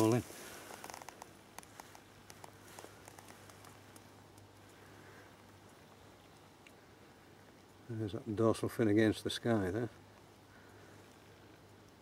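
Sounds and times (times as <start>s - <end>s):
faint low hum: 0.0s - 12.0s
soft ticks: 0.7s - 4.8s, 5.6s - 6.8s.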